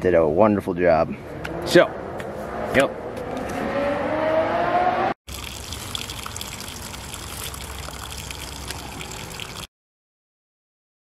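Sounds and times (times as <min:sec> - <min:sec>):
rising whine: 0:01.1 - 0:05.2
water rushing out of tire: 0:05.3 - 0:09.7.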